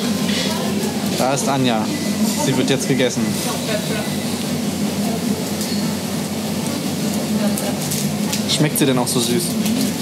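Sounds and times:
restaurant background noise: 0.0 - 10.0
ventilation hum: 0.0 - 10.0.

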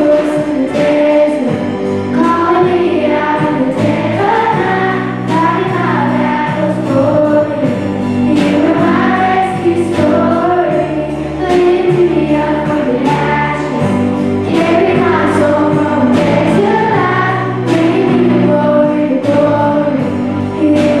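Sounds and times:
acoustic guitar: 0.0 - 21.0
drums: 0.0 - 21.0
keyboard: 0.0 - 21.0
women singing worship song: 0.0 - 21.0.

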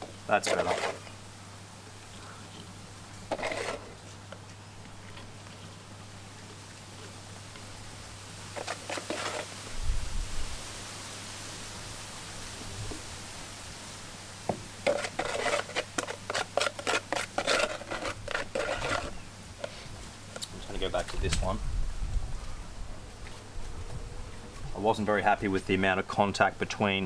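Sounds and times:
spoon scraping cement in tub: 0.0 - 1.1, 3.3 - 4.0, 8.6 - 9.6, 14.8 - 19.8.

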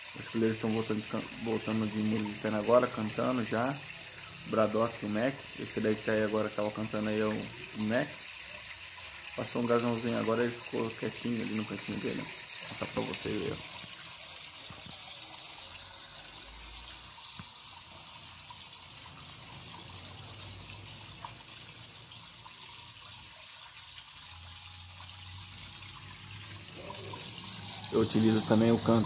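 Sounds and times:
running trickling water: 0.0 - 29.0.

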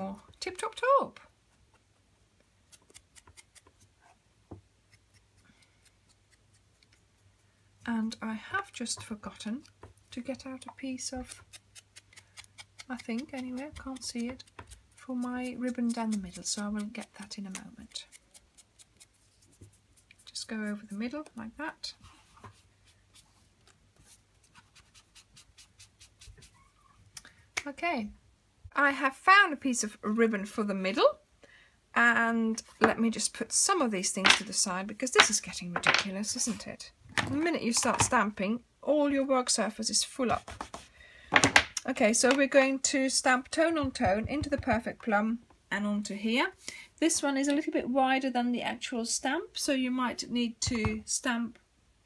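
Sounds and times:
sponge dabbing on paper: 10.8 - 21.4, 22.1 - 26.6.

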